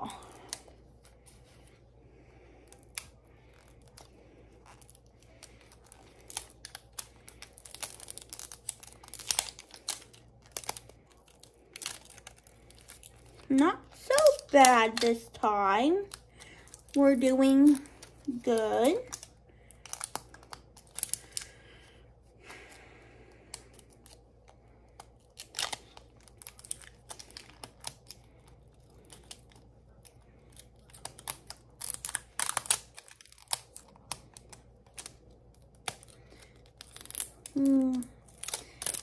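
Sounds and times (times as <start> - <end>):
plastic wrapping crackling: 0.0 - 39.0.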